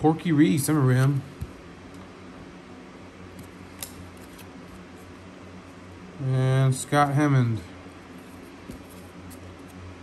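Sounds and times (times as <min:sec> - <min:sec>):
steady low hum: 0:00.0 - 0:10.0
cards being shuffled by hand: 0:03.3 - 0:05.2, 0:08.1 - 0:09.8.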